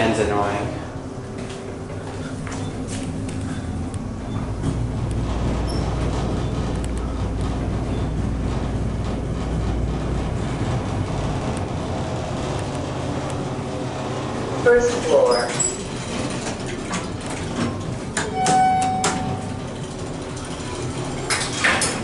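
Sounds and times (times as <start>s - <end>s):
elevator low rumble: 0.0s - 22.0s
ventilation fan hum: 0.0s - 22.0s.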